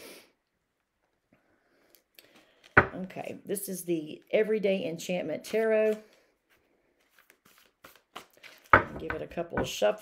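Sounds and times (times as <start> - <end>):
cards being shuffled: 5.4 - 8.9.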